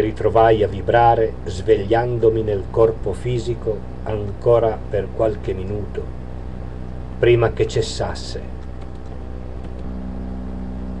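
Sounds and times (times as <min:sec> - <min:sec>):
steady low hum: 0:00.0 - 0:11.0
higher steady tone: 0:09.2 - 0:11.0.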